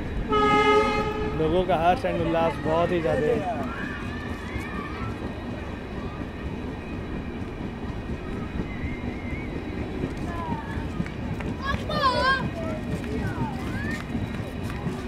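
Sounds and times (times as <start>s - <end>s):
train rumbling: 0.0s - 15.0s
faint voices calling out: 0.8s - 15.0s.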